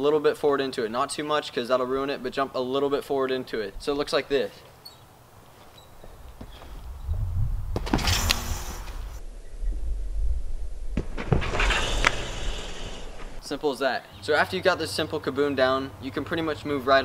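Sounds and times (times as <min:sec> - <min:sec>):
trampoline mat rumbling: 0:06.1 - 0:13.4
trampoline springs and impacts: 0:06.4 - 0:09.2, 0:09.8 - 0:13.5.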